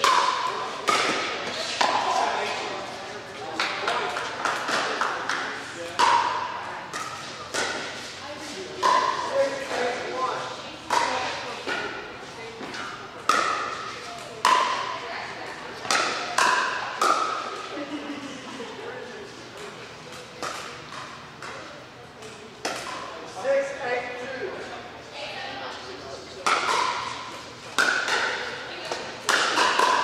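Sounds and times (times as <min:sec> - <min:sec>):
paddles hitting plastic ball: 0:00.0 - 0:02.2, 0:03.6 - 0:08.0, 0:12.6 - 0:14.9, 0:26.4 - 0:30.0.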